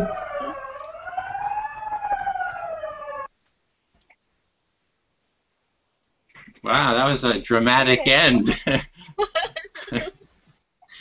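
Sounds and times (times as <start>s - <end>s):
fire alarm siren: 0.0s - 3.3s.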